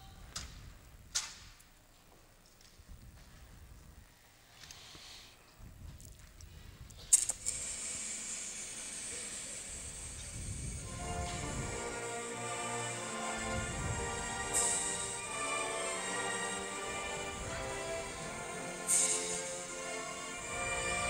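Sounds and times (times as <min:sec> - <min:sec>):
gymnasium ambience: 0:00.0 - 0:21.0
steady high hiss: 0:07.1 - 0:21.0.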